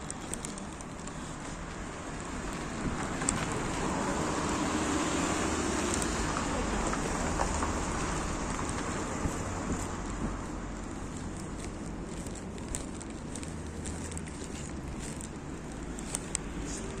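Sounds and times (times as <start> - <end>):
car passing: 0.4 - 17.0
tyre hiss on wet street: 1.0 - 11.4, 15.4 - 17.0.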